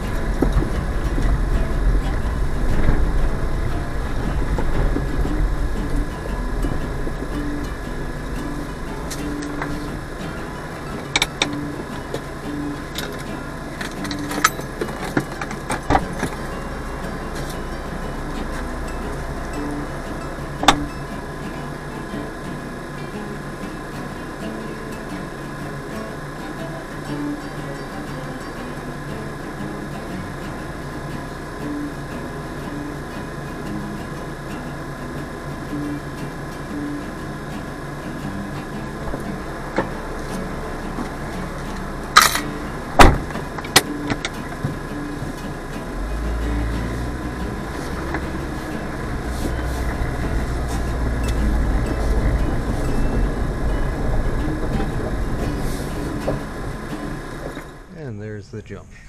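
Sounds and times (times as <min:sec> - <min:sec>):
car engine idling: 0:00.0 - 0:58.9.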